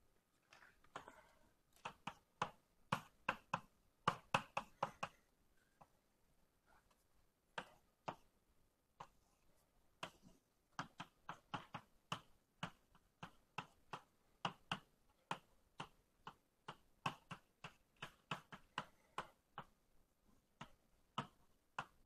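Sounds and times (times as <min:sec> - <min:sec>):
writing taps on a board: 0:00.9 - 0:06.0, 0:07.5 - 0:08.3, 0:10.0 - 0:19.8, 0:20.4 - 0:22.0.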